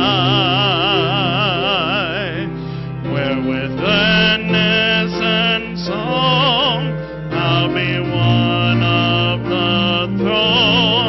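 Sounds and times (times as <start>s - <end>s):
man singing a hymn: 0.0s - 11.0s.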